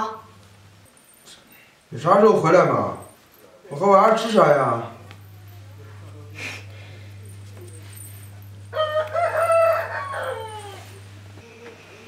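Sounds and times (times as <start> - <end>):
rooster crowing: 8.6 - 11.3.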